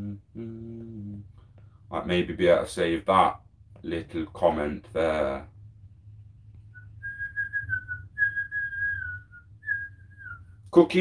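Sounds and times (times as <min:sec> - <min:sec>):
man whistling a tune: 0:06.7 - 0:10.6.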